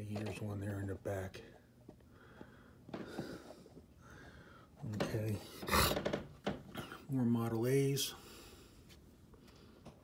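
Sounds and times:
soft breathing: 1.5 - 4.8, 8.1 - 10.0.

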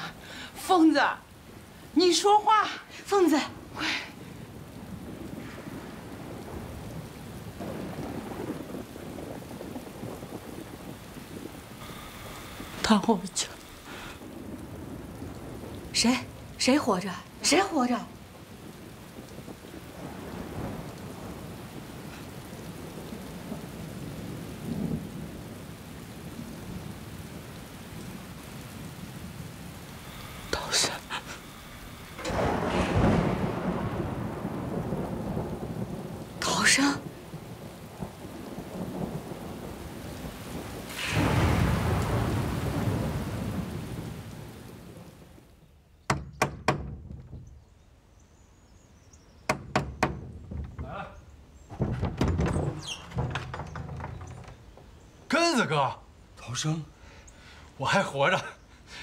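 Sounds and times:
steady rain: 0.0 - 59.0
thunder cracks and rumbles: 3.6 - 45.4
knocks on wooden door: 46.1 - 47.6, 49.5 - 54.6.

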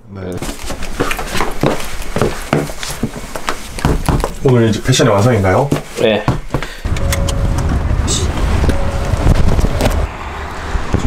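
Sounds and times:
engine and road rumble: 6.8 - 11.0.

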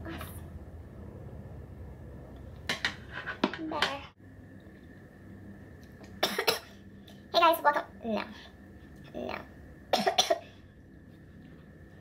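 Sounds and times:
woman coughing: 6.2 - 6.7, 10.0 - 10.4.

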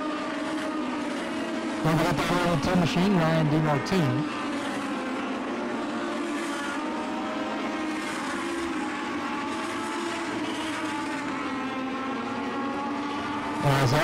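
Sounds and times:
race car engines high-revving: 0.0 - 14.0.

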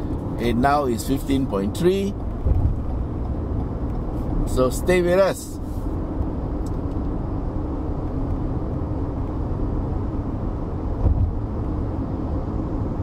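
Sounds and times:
car cabin road and engine rumble: 0.0 - 13.0.

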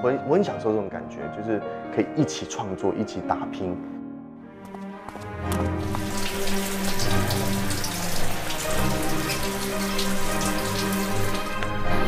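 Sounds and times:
low sustained music notes: 5.2 - 12.0.

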